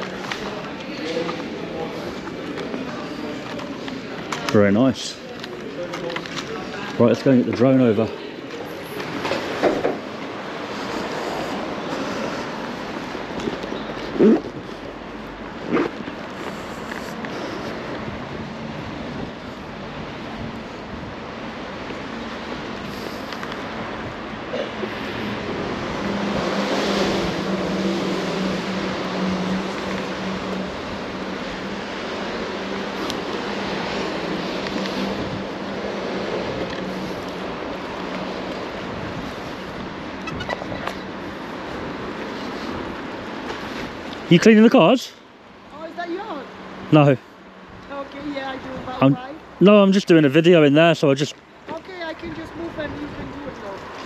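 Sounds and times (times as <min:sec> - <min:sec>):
outdoor traffic: 0:00.0 - 0:54.0.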